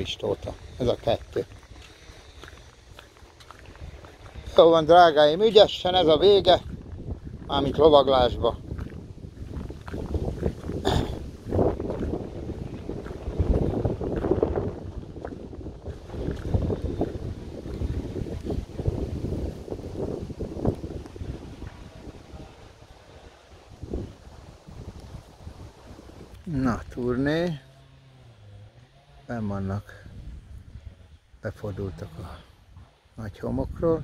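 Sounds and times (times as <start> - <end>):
wind buffeting microphone: 0.0 - 27.6, 29.4 - 34.0.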